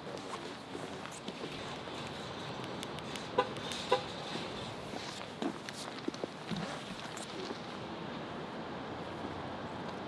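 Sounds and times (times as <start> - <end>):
outdoor traffic noise: 0.0 - 10.0.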